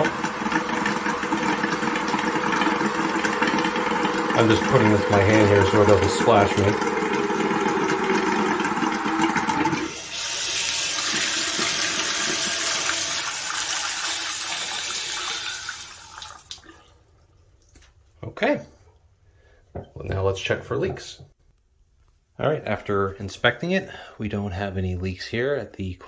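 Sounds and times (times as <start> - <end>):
water and air spurting from faucet: 0.0 - 16.9.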